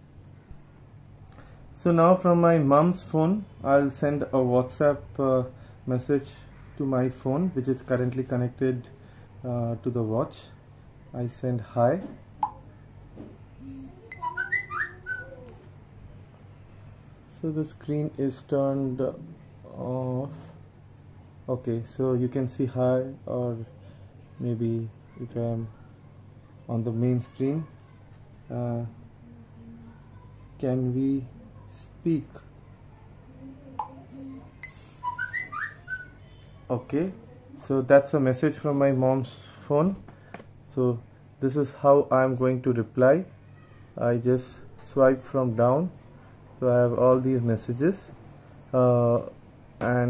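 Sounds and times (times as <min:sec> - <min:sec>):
low steady hum: 0:00.0 - 0:50.0
short high blip: 0:12.4 - 0:12.6
chirping whistles gliding in pitch: 0:14.1 - 0:15.4, 0:34.2 - 0:36.2.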